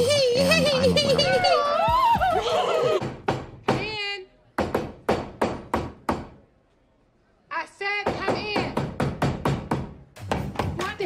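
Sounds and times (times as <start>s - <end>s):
hammer striking nail into wood: 4.6s - 6.4s, 8.1s - 10.8s.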